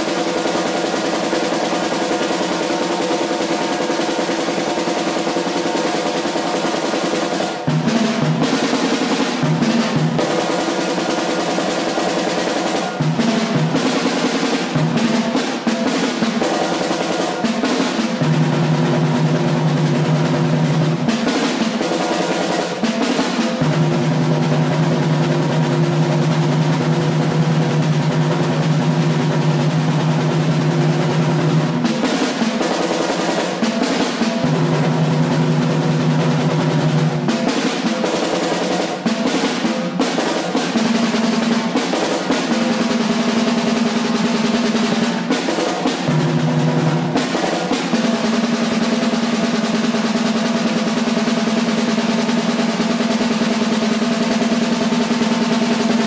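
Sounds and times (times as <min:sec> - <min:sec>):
snare drum roll: 0:00.0 - 0:56.0.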